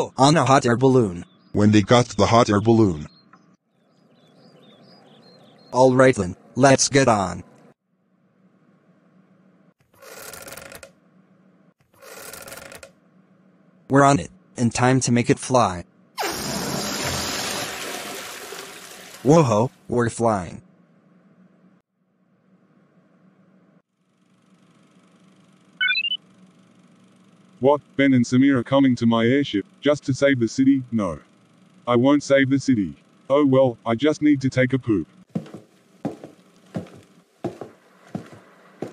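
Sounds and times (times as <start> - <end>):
faint steady hum: 19.3 - 38.9
rising electronic beeps: 25.8 - 26.2.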